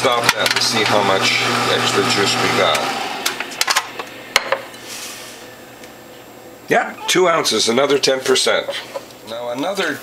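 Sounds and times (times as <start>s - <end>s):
juicer motor hum: 0.0s - 4.4s.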